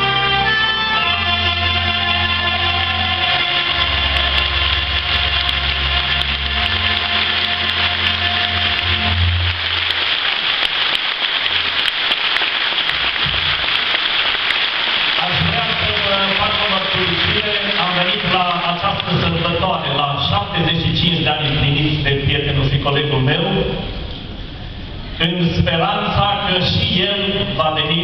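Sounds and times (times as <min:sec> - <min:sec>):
folk band with reed and violins: 0:00.0 - 0:10.0
audience applause: 0:01.0 - 0:20.0
man speaking: 0:15.2 - 0:23.8, 0:25.2 - 0:28.0.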